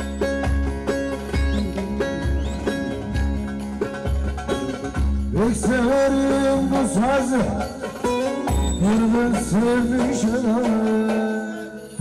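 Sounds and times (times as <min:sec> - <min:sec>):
saz plucked folk dance tune: 0:00.0 - 0:12.0.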